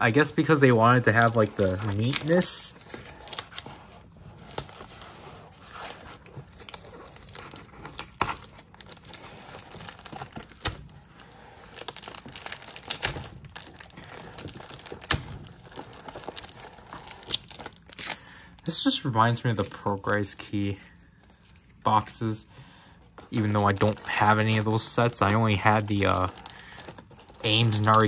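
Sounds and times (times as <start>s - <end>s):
plastic bags crinkling: 0.0s - 4.9s, 5.5s - 18.7s, 23.1s - 28.0s
sticky tape peeling: 5.6s - 18.2s.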